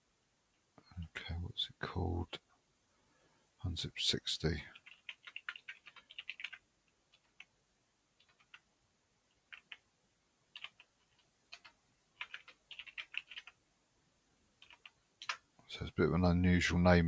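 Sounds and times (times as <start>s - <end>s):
computer keyboard typing: 4.8s - 7.5s, 8.2s - 8.7s, 9.4s - 9.8s, 10.5s - 13.6s, 14.6s - 15.4s.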